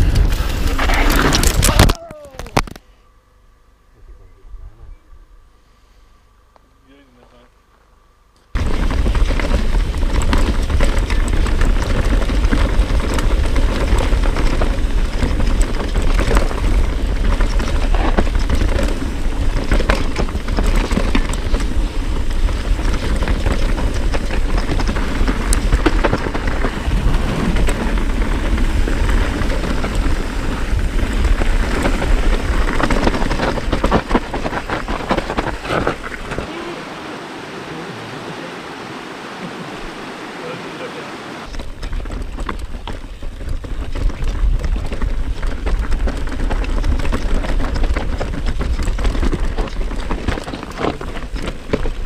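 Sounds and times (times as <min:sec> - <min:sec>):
bike rattling over roots: 0:00.0 - 0:02.8, 0:08.5 - 0:36.8, 0:41.4 - 0:52.0
bike tyres rumbling on dirt: 0:00.0 - 0:02.8, 0:08.5 - 0:52.0
stones clicking and rattling: 0:41.5 - 0:52.0.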